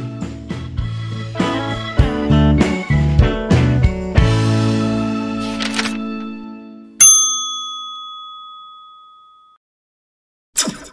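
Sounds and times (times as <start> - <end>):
bright bell ding: 7.0 - 9.6.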